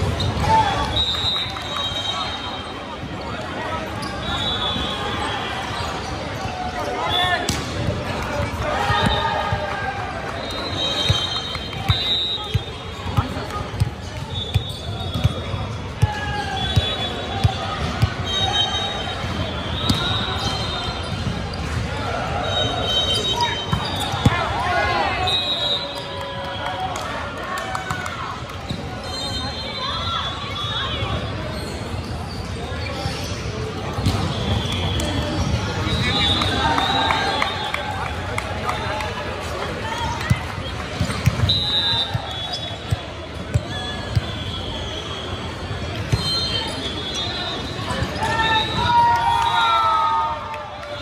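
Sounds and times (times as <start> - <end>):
volleyball bouncing and struck: 19.2 - 20.1.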